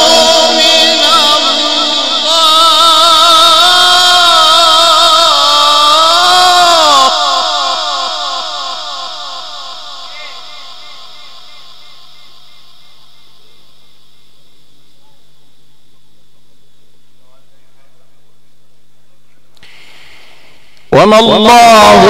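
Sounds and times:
man reciting long held note: 0.0s - 15.0s, 20.9s - 22.0s
echo of recitation: 0.0s - 15.2s, 19.6s - 22.0s.

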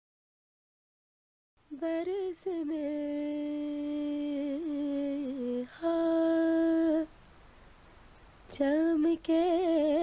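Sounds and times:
woman singing wordless held notes: 1.6s - 7.2s, 8.5s - 10.0s.

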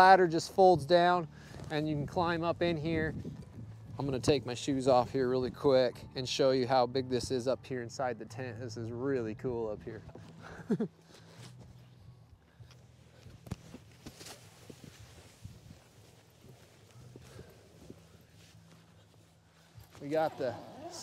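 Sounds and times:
person laughing: 10.4s - 11.1s.

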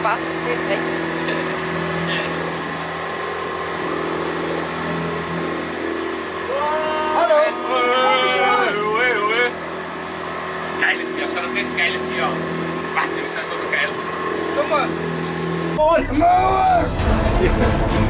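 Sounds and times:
boat engine droning: 0.0s - 18.0s
person calling out: 6.5s - 9.5s.

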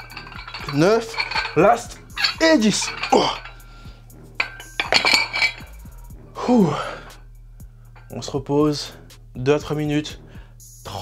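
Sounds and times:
iron dumbbell plates clinking: 0.0s - 6.0s
man groaning: 6.4s - 7.0s.

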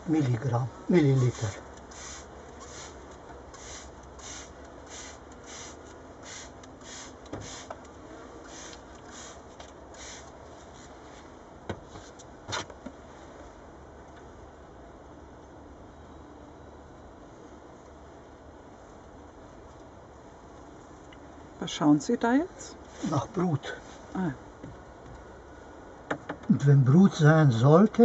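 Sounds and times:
spray bottle hissing: 1.3s - 7.7s, 8.5s - 10.3s.

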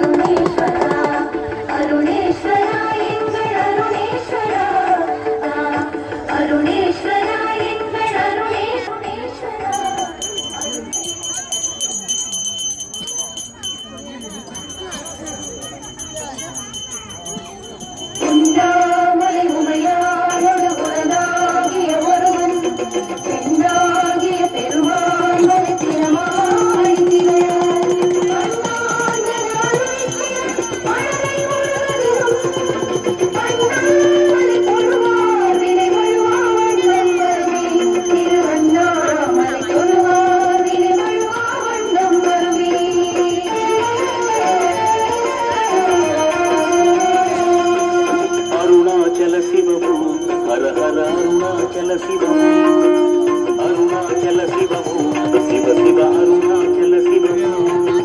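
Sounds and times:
devotional music: 0.0s - 12.1s, 17.6s - 58.0s
small bell rung rapidly: 9.6s - 58.0s.

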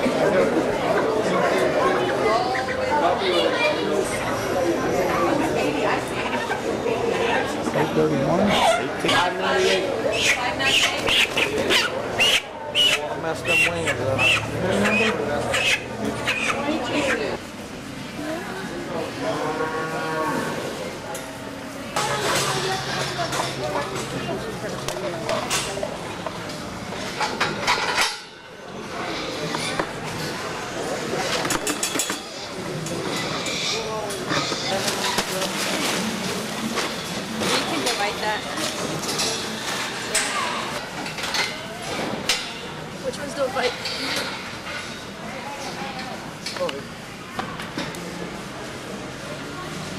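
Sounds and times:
low murmur of voices: 0.0s - 49.9s
cow mooing: 19.3s - 20.6s.

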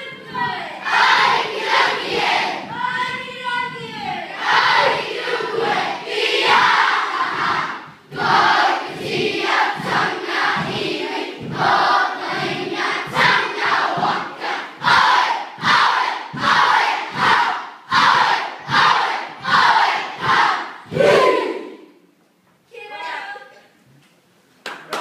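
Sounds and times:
children chanting in unison: 0.0s - 21.9s.

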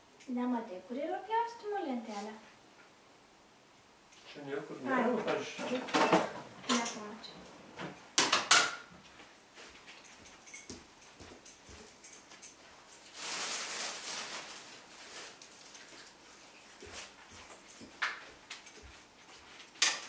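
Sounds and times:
cutlery and dishes clattering: 5.2s - 7.1s, 7.8s - 8.9s, 19.6s - 20.0s
rustling: 9.0s - 20.0s.

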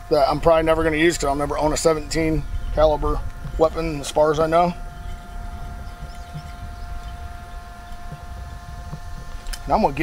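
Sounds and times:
faint steady hum tone: 0.0s - 10.0s
low background rumble: 0.0s - 10.0s.

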